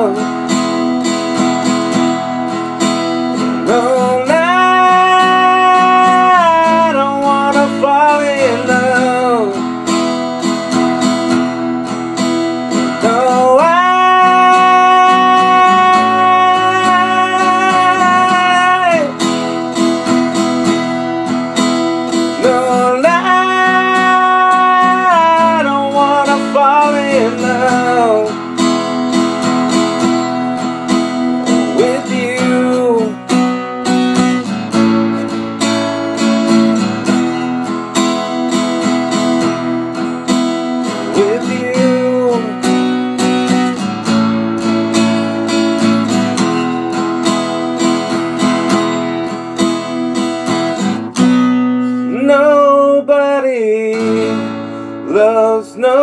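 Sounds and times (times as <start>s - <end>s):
acoustic guitar strumming chords: 0.0s - 56.0s.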